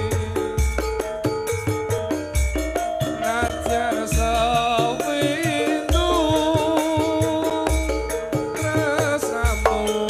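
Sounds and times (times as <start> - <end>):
percussion beat: 0.0 - 10.0
tambourine: 0.0 - 10.0.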